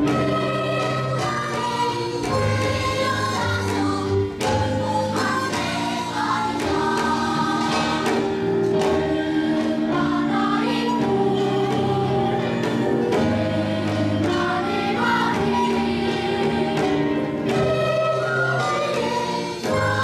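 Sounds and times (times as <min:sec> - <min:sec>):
children's choir singing: 0:00.0 - 0:20.0.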